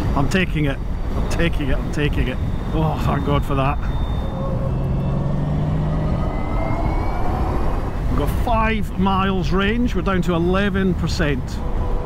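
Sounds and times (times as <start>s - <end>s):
wind and road noise rushing: 0.0s - 12.0s
faint rising whine: 0.6s - 8.5s
low hum: 0.7s - 9.0s.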